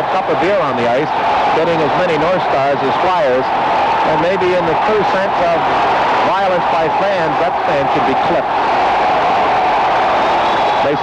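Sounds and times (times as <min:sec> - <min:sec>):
man's voice: 0:00.0 - 0:03.5, 0:04.1 - 0:05.6, 0:06.2 - 0:08.5
arena crowd din: 0:00.0 - 0:11.0.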